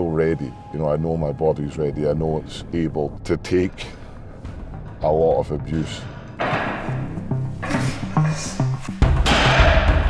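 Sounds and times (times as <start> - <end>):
music with low stepping notes: 2.6 - 10.0.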